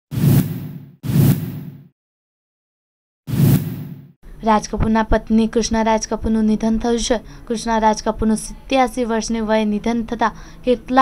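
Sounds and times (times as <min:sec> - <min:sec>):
whoosh sound effect: 0:00.1 - 0:01.9, 0:03.3 - 0:04.1.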